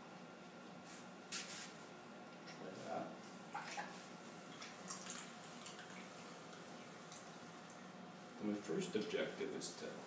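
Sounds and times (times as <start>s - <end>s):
pottery wheel hum: 0.0s - 10.0s.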